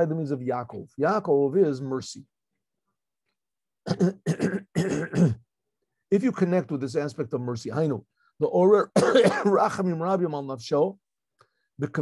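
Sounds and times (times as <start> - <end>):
man coughing: 3.9 - 5.4, 9.0 - 9.6.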